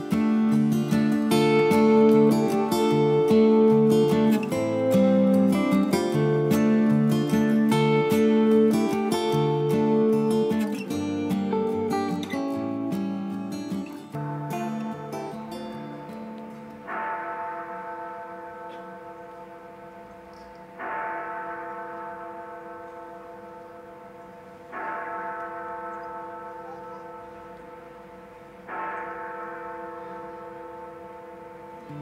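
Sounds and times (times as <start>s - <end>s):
large bell tolling: 0.0s - 12.9s, 13.6s - 32.0s.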